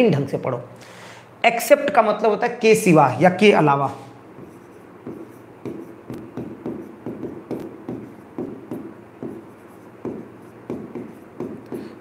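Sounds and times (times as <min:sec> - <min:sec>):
stylus scratching on screen: 0:03.9 - 0:12.0.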